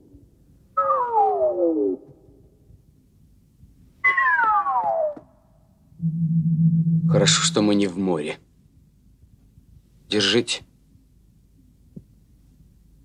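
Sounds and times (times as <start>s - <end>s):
low steady drone: 5.9s - 8.1s
falling synthesizer glide: 6.0s - 7.8s.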